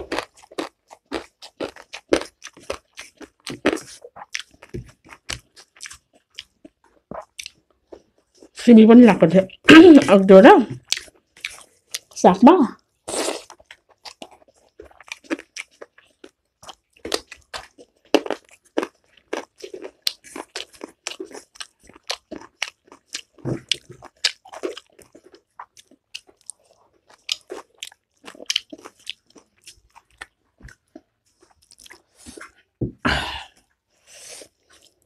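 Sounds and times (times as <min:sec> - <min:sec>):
chewing and crunching food: 0:00.0 - 0:08.7, 0:09.5 - 0:12.2, 0:12.8 - 0:32.8, 0:33.4 - 0:35.0.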